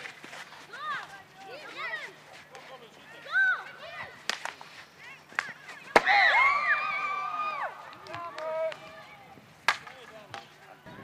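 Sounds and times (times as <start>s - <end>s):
hockey sticks clacking ball: 0.0s - 2.8s, 3.6s - 6.1s, 7.8s - 8.9s, 9.6s - 10.6s
players shouting: 5.9s - 9.3s.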